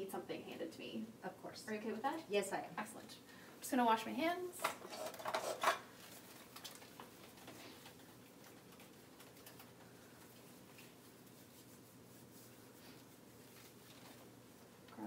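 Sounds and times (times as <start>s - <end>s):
hands rubbing together: 7.1s - 14.5s.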